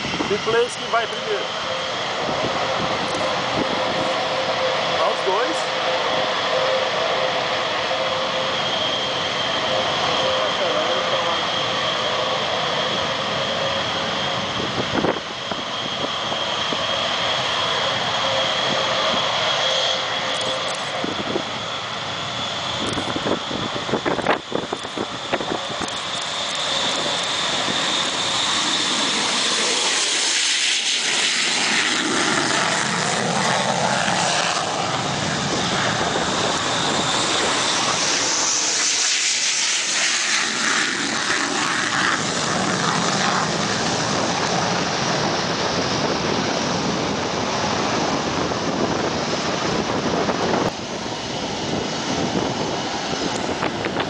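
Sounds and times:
jet engine roar with whine: 0.0s - 54.0s
jet rolling past: 0.0s - 54.0s.

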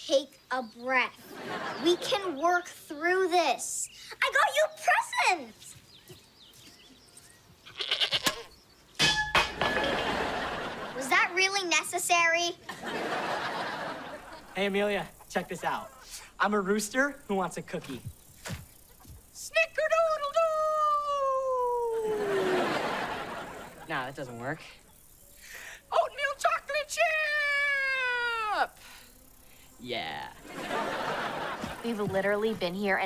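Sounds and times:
goat bleating: 7.7s - 8.5s.

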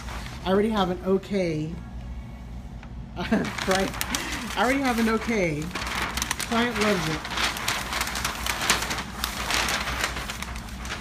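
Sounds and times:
crackling rustling handling noise: 0.0s - 0.9s, 2.7s - 11.0s
low steady hum: 0.0s - 11.0s.

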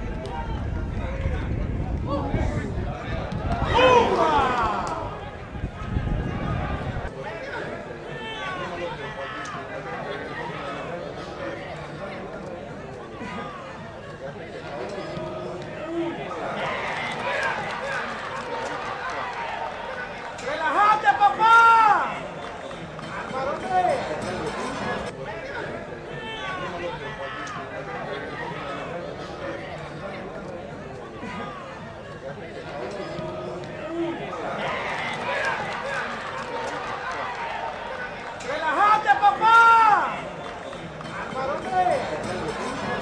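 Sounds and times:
stadium crowd noise: 0.0s - 43.0s
loud drawn-out yell: 3.5s - 7.1s, 15.8s - 22.3s, 33.2s - 40.4s
men shouting: 3.6s - 5.1s, 38.6s - 40.2s.

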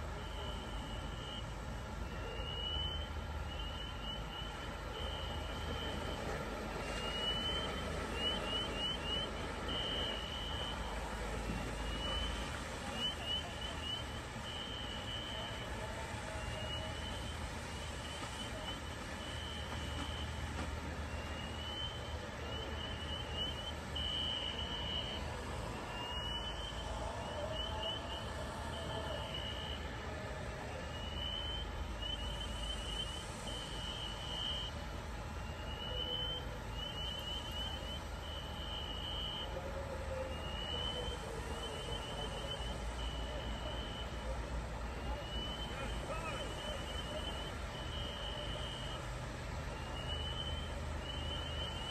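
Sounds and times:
fire engine running: 0.0s - 51.9s.

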